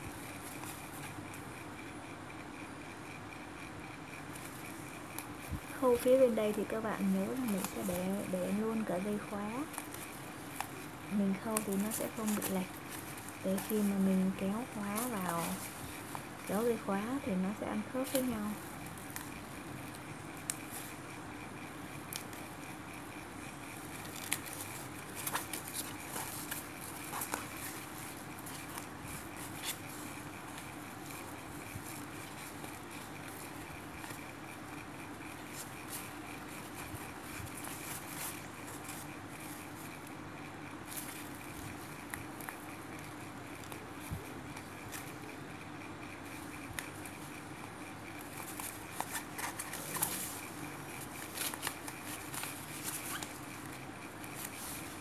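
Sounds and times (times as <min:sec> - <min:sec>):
steady background hum: 0:00.0 - 0:55.0.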